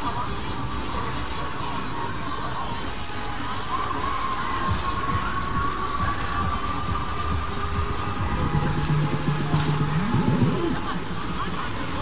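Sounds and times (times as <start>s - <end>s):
crowd noise: 0.0s - 12.0s
fairground ride music: 0.0s - 12.0s.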